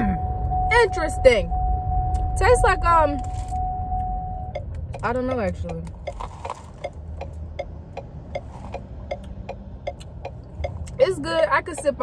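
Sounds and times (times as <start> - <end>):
low rumble: 0.0 - 10.9
turn signal ticking: 0.0 - 12.0.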